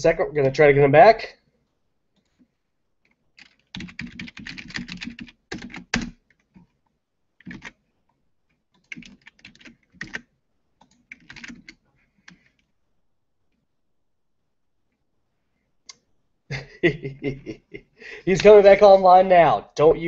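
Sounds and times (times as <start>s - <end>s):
keyboard typing: 2.2s - 12.7s.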